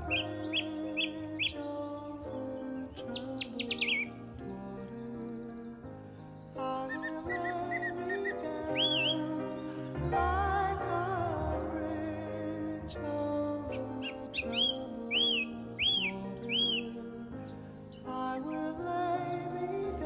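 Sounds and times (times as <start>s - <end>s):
bird chirping: 0.0s - 20.0s
slow instrumental music: 0.0s - 20.0s.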